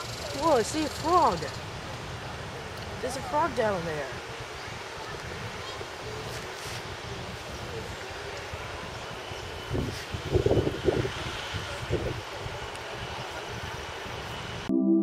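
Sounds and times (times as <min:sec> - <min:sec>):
wind on microphone: 0:02.9 - 0:14.6.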